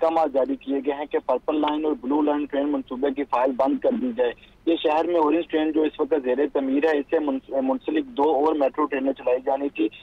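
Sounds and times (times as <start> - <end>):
man talking over telephone line: 0.0 - 10.0.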